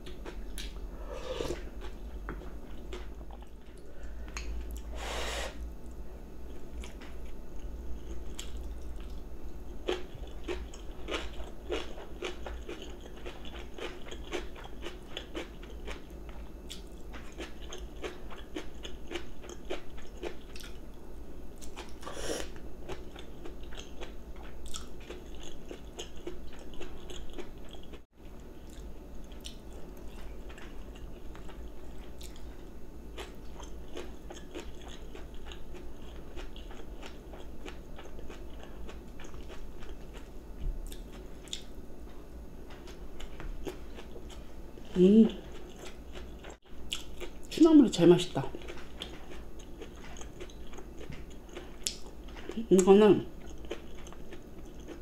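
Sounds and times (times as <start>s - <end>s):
person chewing crunchy food: 0.0s - 4.9s, 5.8s - 21.0s, 21.6s - 47.5s, 48.5s - 55.0s.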